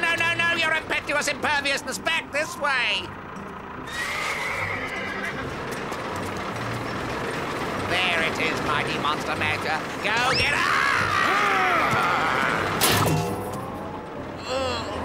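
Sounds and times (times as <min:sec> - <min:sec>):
cartoon horse whinnying: 0:03.8 - 0:05.4.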